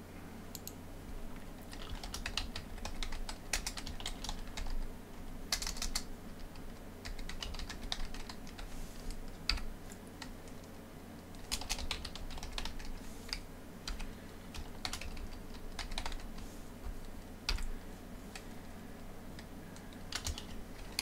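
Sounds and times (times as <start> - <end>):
faint low hum: 0.0 - 21.0
keyboard typing: 0.5 - 0.8, 1.6 - 4.9, 5.5 - 10.7, 11.4 - 18.6, 19.3 - 21.0.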